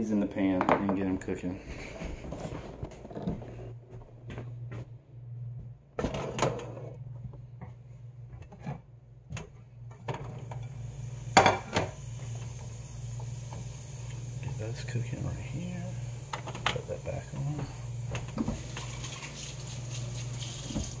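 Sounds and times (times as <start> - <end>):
steady low hum: 0.0 - 19.0.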